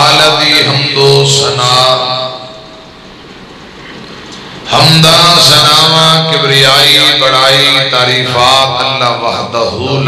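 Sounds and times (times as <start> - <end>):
man chanting over loudspeaker: 0.0 - 2.9, 4.6 - 10.0
steady background hiss: 0.0 - 10.0.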